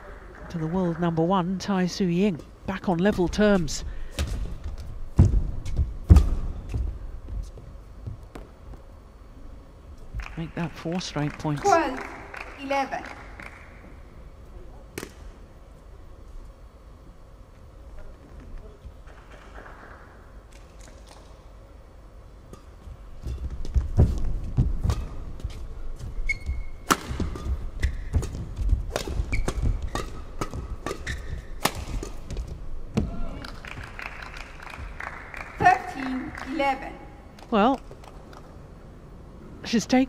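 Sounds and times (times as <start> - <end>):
shoe squeak: 26.1 - 26.9, 27.8 - 28.2, 29.2 - 30.1, 30.9 - 31.6.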